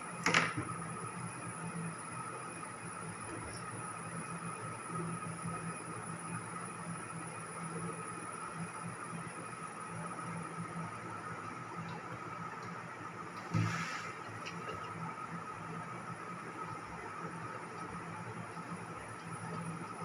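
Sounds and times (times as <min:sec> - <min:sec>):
room noise hum and hiss: 0:00.0 - 0:20.0.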